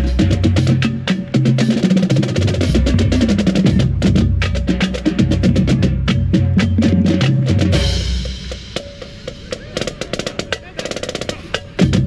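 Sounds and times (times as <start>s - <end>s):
marching drumline playing: 0.0s - 12.0s.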